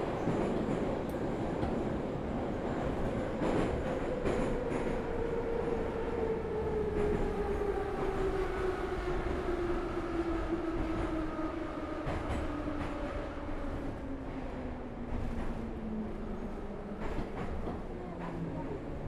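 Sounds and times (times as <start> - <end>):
train rumble: 0.0 - 19.0.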